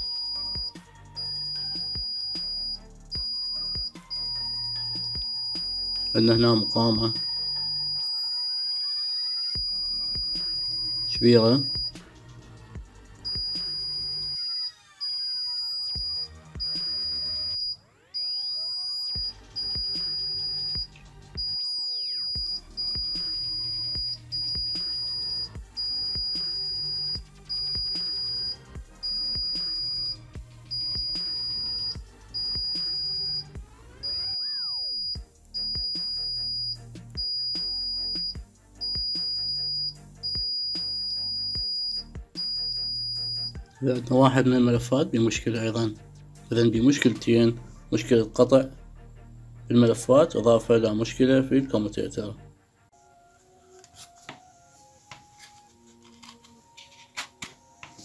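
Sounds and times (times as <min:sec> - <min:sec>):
multimeter continuity beeps: 0:00.0 - 0:12.0, 0:13.2 - 0:43.6
background music: 0:00.0 - 0:58.0.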